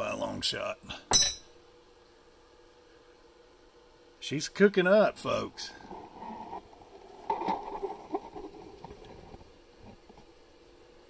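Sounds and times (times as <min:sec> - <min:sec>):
sharp clink: 0:01.1 - 0:01.5.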